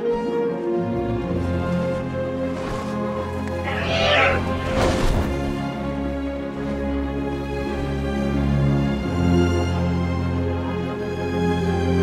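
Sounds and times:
orchestral film score: 0.0s - 12.0s
screeching creature cry: 3.6s - 4.6s.

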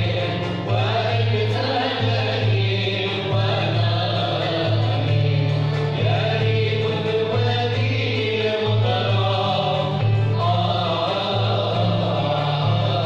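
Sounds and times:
ensemble singing: 0.0s - 13.0s
lutes and bowed strings: 0.0s - 13.0s.

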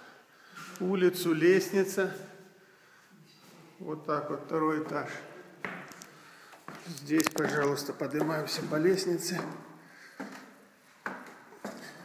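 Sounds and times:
footsteps on wooden stairs: 4.8s - 6.0s, 6.6s - 12.0s.

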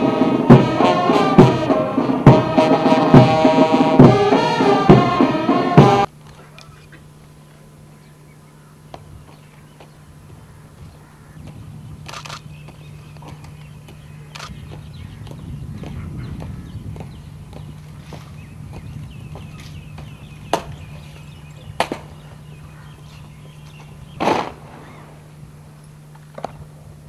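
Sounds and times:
steady low hum: 0.0s - 27.0s.

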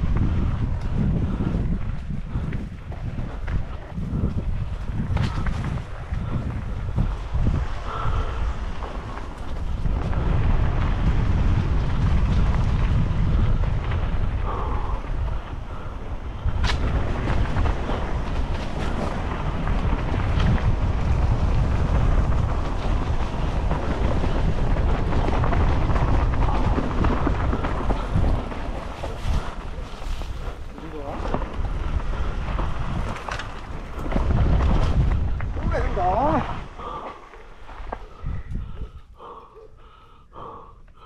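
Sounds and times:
tyres rolling on dirt trail: 0.0s - 41.0s
wind buffeting microphone: 0.0s - 41.0s.

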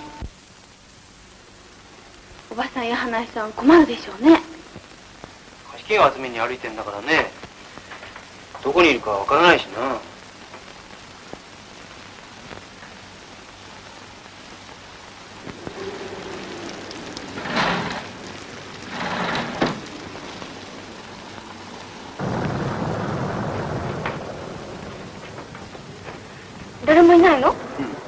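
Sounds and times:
heavy rain: 0.0s - 28.0s
thunder roll: 15.3s - 28.0s
gusts of noise: 15.4s - 28.0s.

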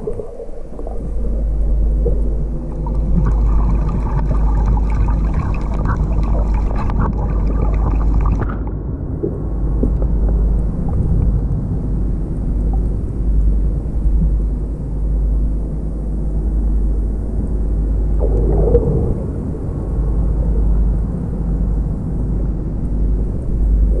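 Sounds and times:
muffled underwater rumble: 0.0s - 24.0s.

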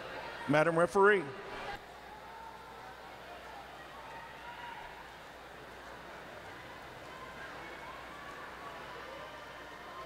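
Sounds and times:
crowd murmur: 1.2s - 10.0s.

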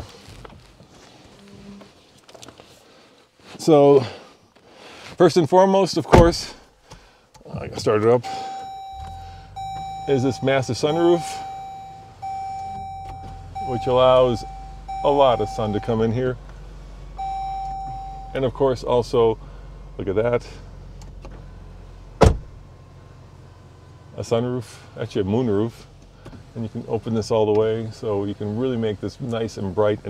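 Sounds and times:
steady even tone: 8.5s - 16.3s, 17.2s - 18.8s.

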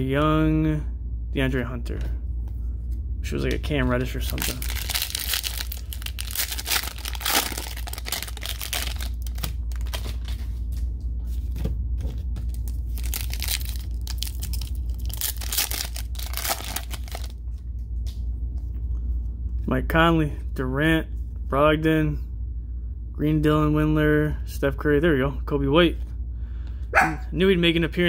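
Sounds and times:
steady low hum: 0.0s - 28.0s
cellophane wrapper crinkling and tearing: 3.9s - 10.5s, 12.4s - 17.4s.

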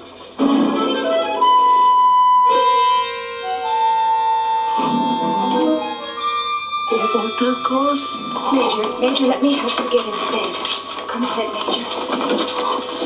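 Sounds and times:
background score music: 0.3s - 13.0s.

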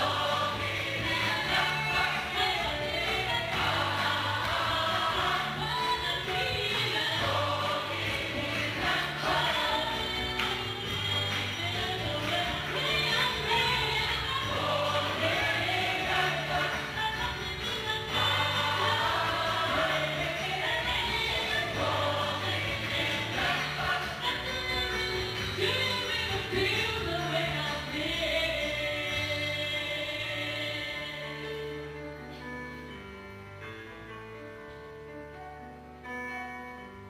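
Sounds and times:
women singing lead: 0.0s - 31.8s
gospel choir singing: 0.0s - 32.0s.

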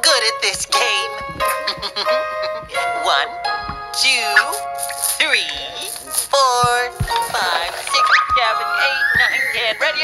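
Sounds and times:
cartoon background music: 0.0s - 10.0s
high wavering cartoon voices: 7.9s - 10.0s.

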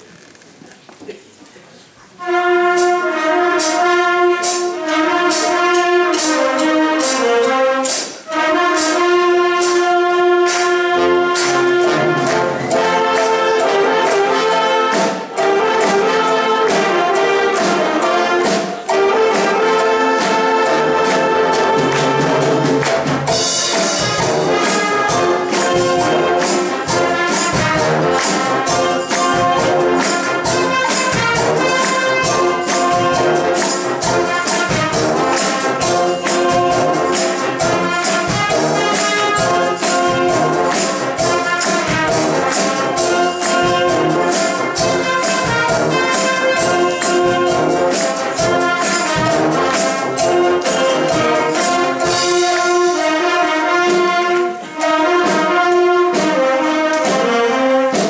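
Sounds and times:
wind orchestra playing: 2.1s - 58.0s
brass melody: 2.2s - 58.0s
steady percussion beat: 2.2s - 58.0s.

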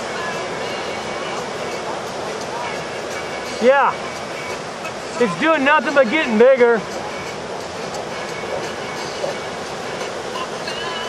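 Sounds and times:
ocean surf breaking: 0.0s - 11.0s.

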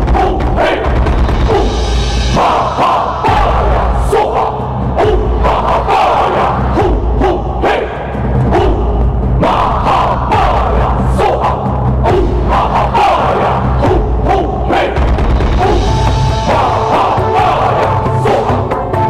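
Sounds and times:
percussion strokes: 0.0s - 7.4s, 12.0s - 19.0s
many voices chanting: 0.0s - 19.0s
steady low drone: 0.0s - 19.0s.

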